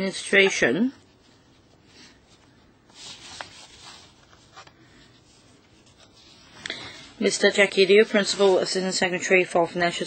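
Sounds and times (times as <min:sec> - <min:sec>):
papers rustling: 0:01.2 - 0:07.0.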